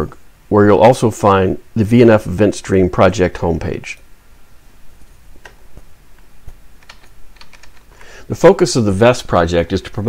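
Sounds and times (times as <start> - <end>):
computer keyboard keys clicking: 6.8 - 7.9.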